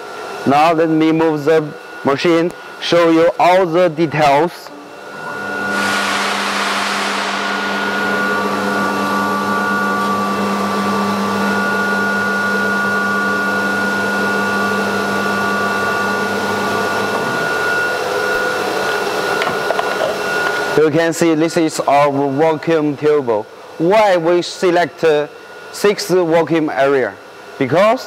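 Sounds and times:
vacuum pump humming: 0:00.0 - 0:27.9.

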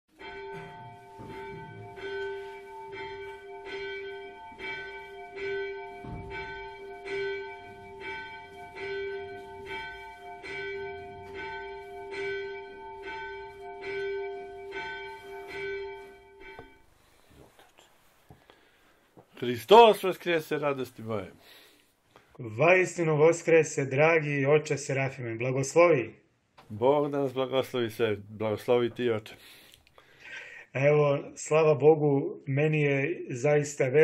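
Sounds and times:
church bells ringing: 0:00.1 - 0:17.2.

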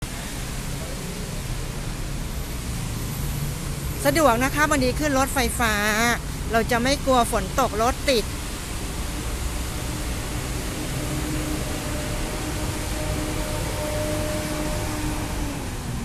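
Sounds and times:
street noise hiss: 0:00.0 - 0:16.0.

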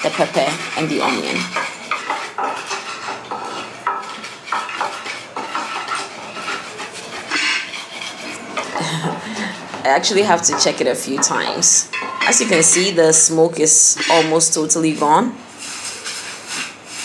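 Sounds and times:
grinding in a clay bowl: 0:00.0 - 0:17.0.

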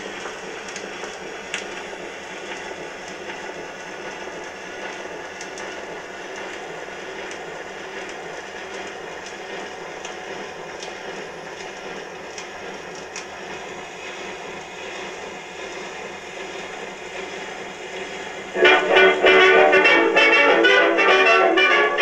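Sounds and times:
record crackles and clicks: 0:00.0 - 0:18.9.

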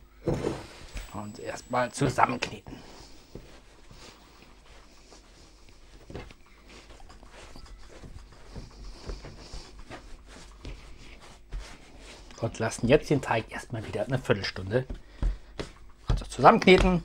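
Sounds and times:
hands kneading dough: 0:00.8 - 0:17.0.

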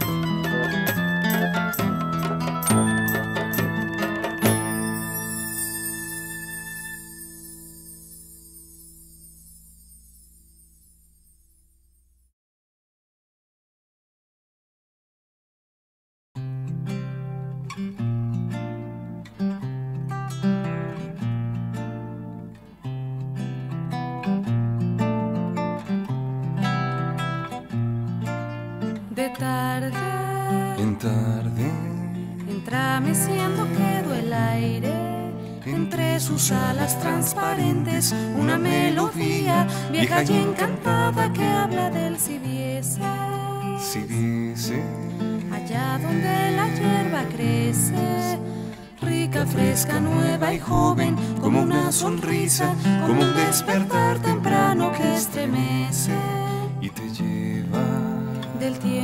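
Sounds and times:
wavering gliding melody line: 0:00.0 - 0:11.5, 0:36.4 - 0:42.5
acoustic guitar chord ringing: 0:00.0 - 0:12.0, 0:16.4 - 0:59.0.

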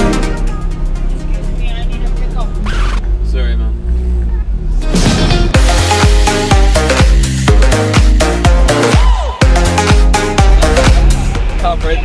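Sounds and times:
electronic background music: 0:00.0 - 0:03.0, 0:04.8 - 0:12.0
car engine idling: 0:00.0 - 0:12.0.

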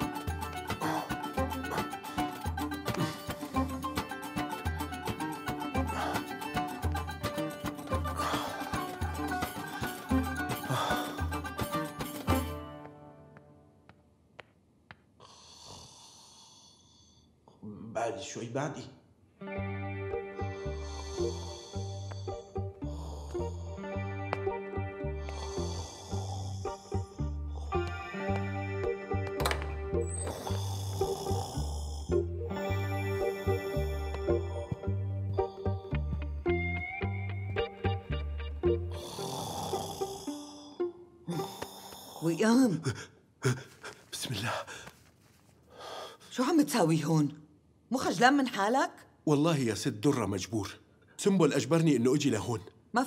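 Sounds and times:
person snoring: 0:00.6 - 0:03.5, 0:15.2 - 0:17.8, 0:20.5 - 0:24.0, 0:25.2 - 0:28.2, 0:30.1 - 0:36.2, 0:38.9 - 0:43.7.

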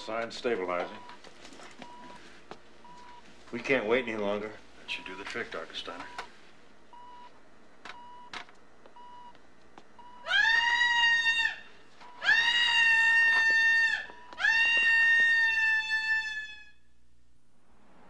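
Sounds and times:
woman screaming: 0:10.2 - 0:16.8.

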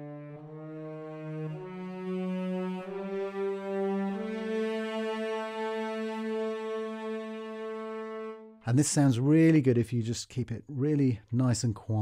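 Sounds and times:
muted cellos playing slow chords: 0:00.0 - 0:08.6.

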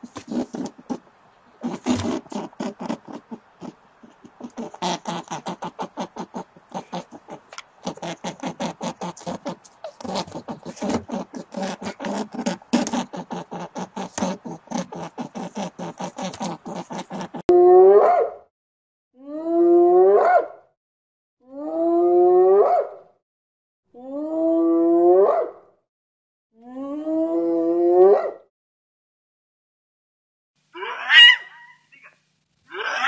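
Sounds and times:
hyena whooping: 0:01.6 - 0:17.4.

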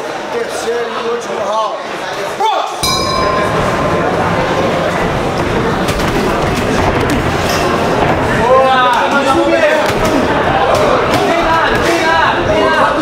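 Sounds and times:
crowd of voices: 0:00.0 - 0:13.0
boxing ring bell: 0:02.8 - 0:06.7.

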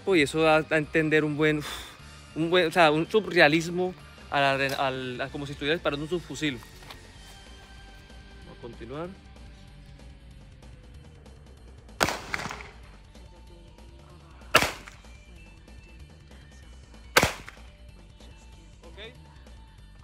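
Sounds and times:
pistol gunshots: 0:12.0 - 0:13.0, 0:14.5 - 0:15.1, 0:17.2 - 0:17.7.

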